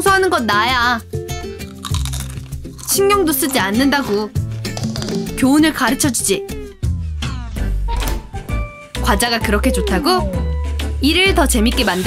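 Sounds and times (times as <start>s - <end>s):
background music: 0.0s - 12.0s
crunch of chip being bitten: 1.6s - 3.5s.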